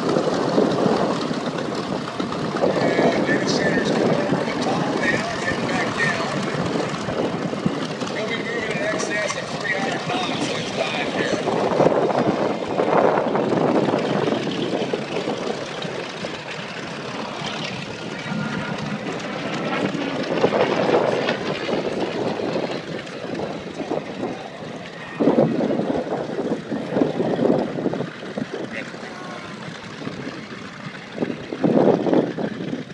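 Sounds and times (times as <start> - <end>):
aircraft radial engine running: 0.0 - 32.9
wind buffeting microphone: 0.0 - 32.9.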